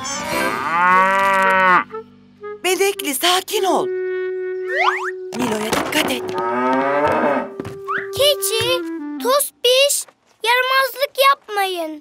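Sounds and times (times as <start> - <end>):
cartoon cow mooing: 0.0 - 1.9.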